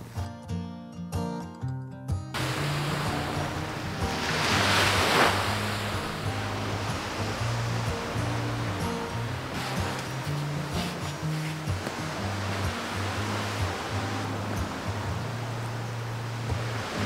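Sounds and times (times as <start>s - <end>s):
background music with bass line: 0.0s - 17.0s
surf washing on shore: 2.4s - 17.0s.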